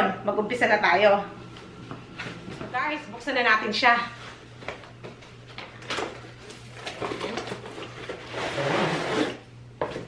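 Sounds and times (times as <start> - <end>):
bag scraping out of box: 6.8 - 9.4.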